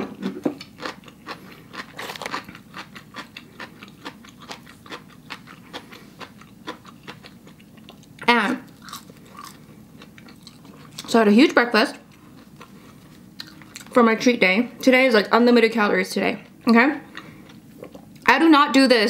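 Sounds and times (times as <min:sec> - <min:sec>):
person chewing food: 0:00.0 - 0:11.1, 0:12.0 - 0:13.9, 0:17.1 - 0:18.3.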